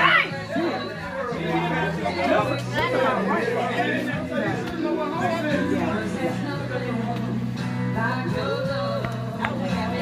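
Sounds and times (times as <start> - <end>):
background music: 0.0 - 10.0
people talking over one another: 0.0 - 10.0.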